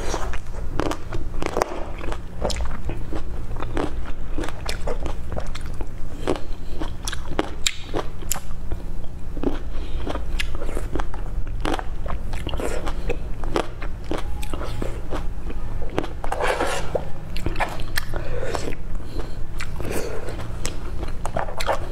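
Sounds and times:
chewing wet crunches: 0.0 - 8.6, 9.4 - 21.9
steady low hum: 0.0 - 21.9.

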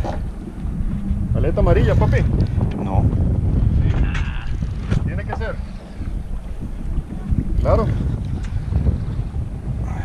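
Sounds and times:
water against boat hull: 0.0 - 10.0
wind buffeting microphone: 0.0 - 10.0.

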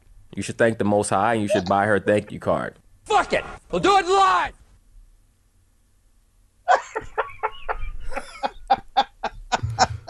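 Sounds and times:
man laughing hard: 6.7 - 10.0.

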